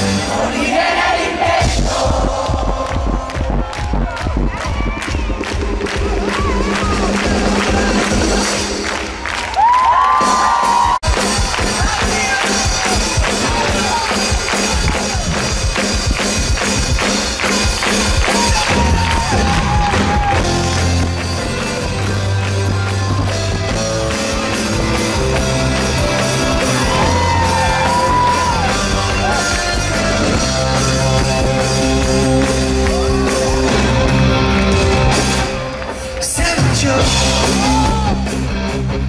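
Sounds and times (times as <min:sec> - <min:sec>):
live pop-rock band playing: 0:00.0 - 0:02.7, 0:09.9 - 0:39.0
crowd cheering: 0:00.0 - 0:38.5
low bass line: 0:01.7 - 0:08.8, 0:18.7 - 0:35.8
crowd clapping along: 0:02.0 - 0:38.1.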